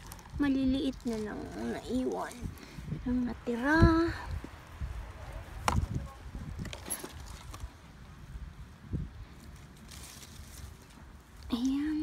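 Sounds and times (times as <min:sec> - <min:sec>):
rustling of plants: 0:00.0 - 0:12.0.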